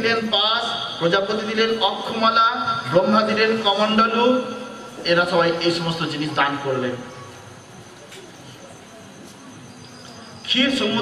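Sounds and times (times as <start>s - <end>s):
faint background noise: 0.0s - 11.0s
thin high continuous tone: 0.0s - 11.0s.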